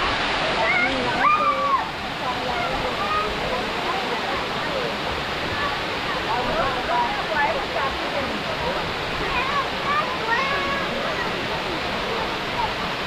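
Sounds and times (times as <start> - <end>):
waterfall pouring into pool: 0.0 - 13.0
faint chatter of voices: 0.4 - 13.0.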